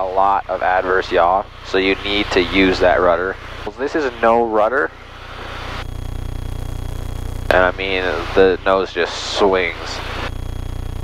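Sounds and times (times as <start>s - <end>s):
plane engine and propeller drone: 0.0s - 5.8s, 7.5s - 10.2s.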